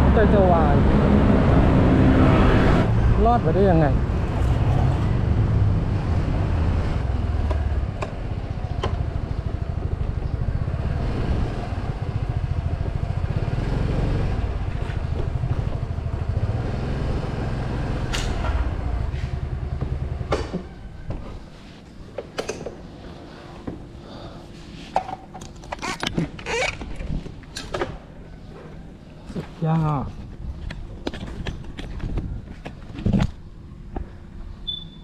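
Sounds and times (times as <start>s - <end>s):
scooter engine rumbling: 2.8s - 21.6s.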